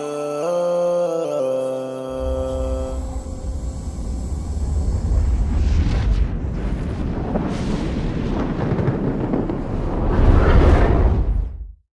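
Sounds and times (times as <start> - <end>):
dense bass rumbling: 2.2 - 11.8.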